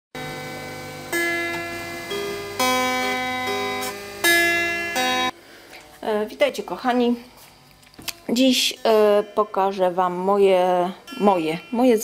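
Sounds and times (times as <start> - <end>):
clean electric guitar notes: 0.2 - 5.4.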